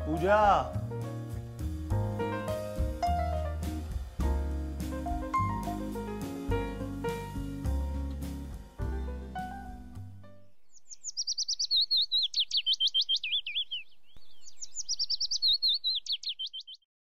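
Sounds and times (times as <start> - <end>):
background music: 0.0 - 10.6
songbird chirping and trilling: 6.7 - 16.9.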